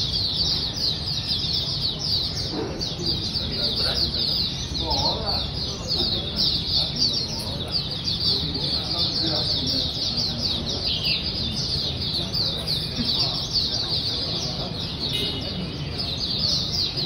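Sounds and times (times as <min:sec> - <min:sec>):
background chatter: 0:00.0 - 0:17.0
birds chirping rapidly: 0:00.0 - 0:17.0.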